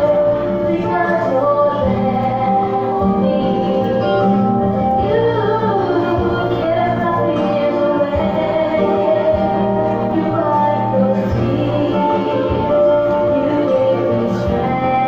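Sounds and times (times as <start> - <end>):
accompanying music: 0.0 - 15.0
children singing: 0.0 - 15.0.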